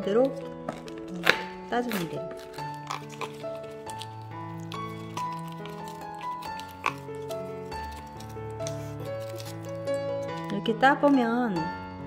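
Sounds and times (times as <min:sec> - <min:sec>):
gentle background music: 0:00.0 - 0:12.0
cardboard box tearing: 0:00.3 - 0:10.5.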